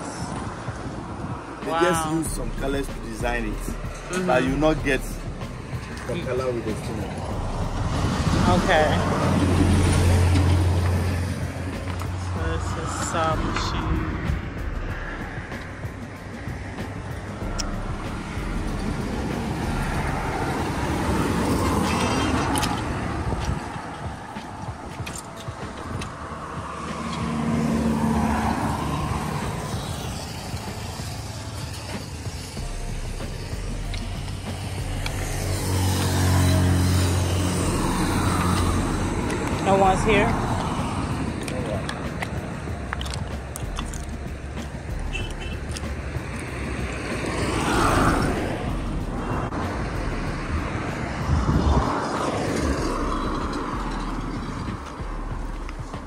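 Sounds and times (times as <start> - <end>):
cars driving past: 0.0 - 56.0.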